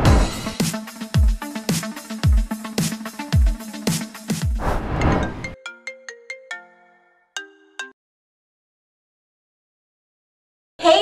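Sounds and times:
electronic music: 0.0 - 4.6
whoosh transition: 4.6 - 5.6
phone ringtone melody: 5.3 - 8.0.

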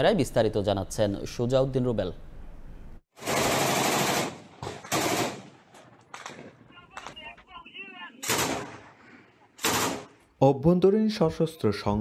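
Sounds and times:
sharp crack: 4.3 - 7.2
man calling out: 6.7 - 8.3
loud gunshot: 8.2 - 8.9.

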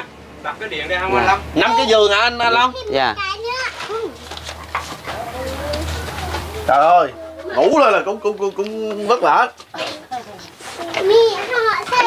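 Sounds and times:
faint children's voices: 1.6 - 12.0.

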